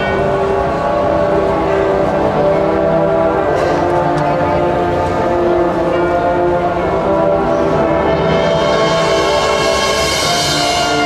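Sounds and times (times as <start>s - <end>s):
brass band sustained chord: 0.0s - 11.0s
percussion ensemble: 0.0s - 11.0s.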